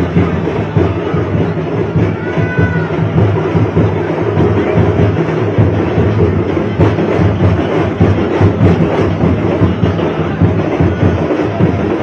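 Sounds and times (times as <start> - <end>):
crowd noise: 0.0 - 12.0
fast procession drumming: 0.0 - 12.0.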